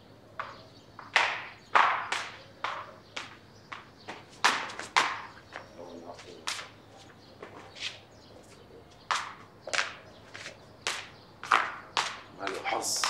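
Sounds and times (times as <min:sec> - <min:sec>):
footsteps on stone floor: 0:00.4 - 0:13.0.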